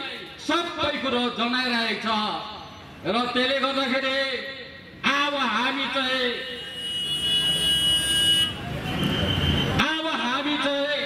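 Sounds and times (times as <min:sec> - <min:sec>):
high steady horn tone: 0:06.5 - 0:09.8.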